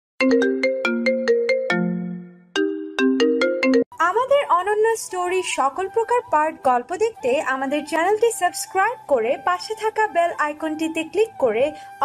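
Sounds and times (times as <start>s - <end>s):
marimba-like ringtone melody: 0.2s - 3.9s.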